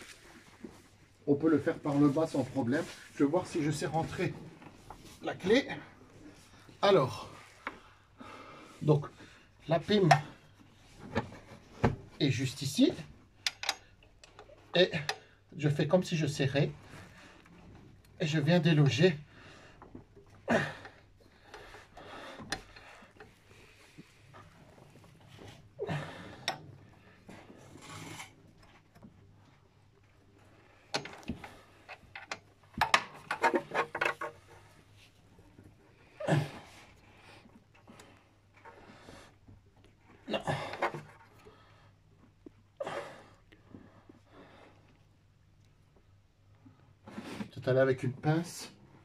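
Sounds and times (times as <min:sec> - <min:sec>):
wrench rubbing and scraping: 0:27.4 - 0:28.8, 0:30.8 - 0:35.0.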